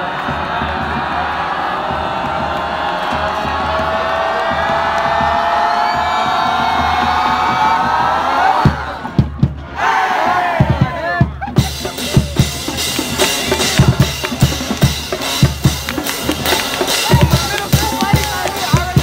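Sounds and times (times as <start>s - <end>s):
stadium crowd cheering: 0.0s - 19.0s.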